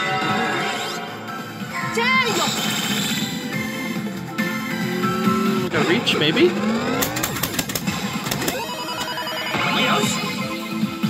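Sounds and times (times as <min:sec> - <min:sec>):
electronic game music: 0:00.0 - 0:11.0.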